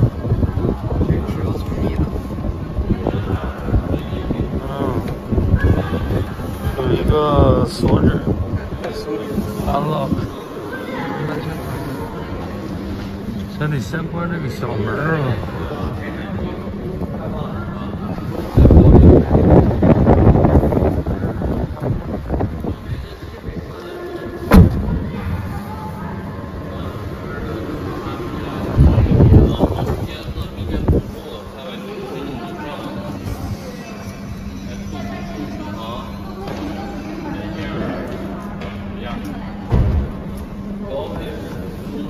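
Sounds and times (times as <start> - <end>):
wind buffeting on microphone: 0.0 - 10.4, 16.6 - 25.6, 27.8 - 31.4
background voices talking: 0.0 - 42.0
steady low hum: 0.0 - 42.0
heavy low thump: 24.4 - 25.5, 39.6 - 40.4.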